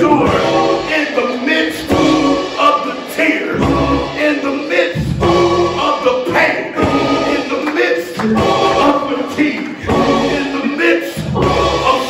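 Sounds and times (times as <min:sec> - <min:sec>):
gospel singing: 0:00.0 - 0:12.0
man singing lead: 0:00.0 - 0:12.0.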